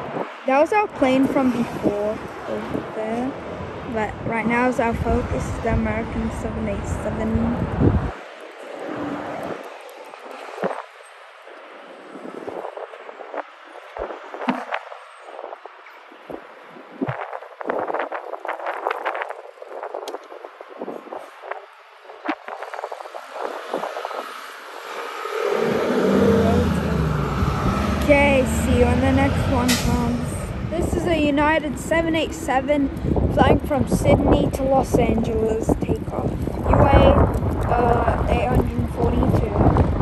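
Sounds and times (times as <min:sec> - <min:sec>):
jet engines rumbling: 0:00.0 - 0:40.0
wind buffeting microphone: 0:00.0 - 0:40.0.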